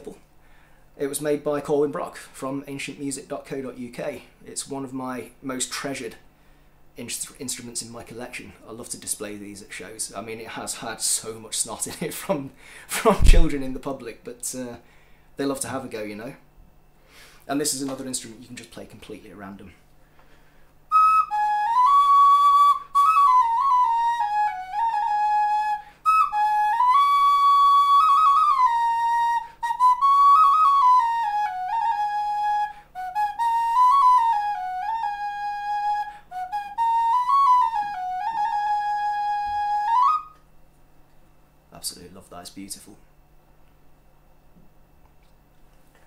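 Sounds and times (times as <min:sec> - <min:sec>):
bone flute melody: 0:20.9 - 0:40.4.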